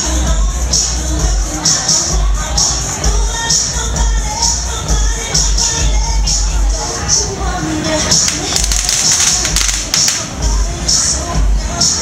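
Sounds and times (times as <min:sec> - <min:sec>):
crowd noise: 0:00.0 - 0:12.0
dance music with bass beat: 0:08.1 - 0:12.0
sharp clicks: 0:08.2 - 0:10.3.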